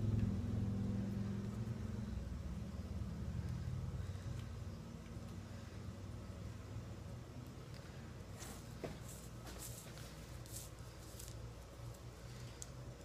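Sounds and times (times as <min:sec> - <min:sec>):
low steady hum: 0:00.0 - 0:13.0
rustling of cord being handled: 0:07.7 - 0:12.8.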